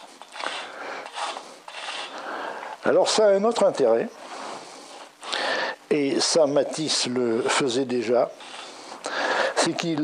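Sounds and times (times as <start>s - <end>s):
charcoal scraping across canvas: 0.0s - 2.2s, 7.5s - 8.8s.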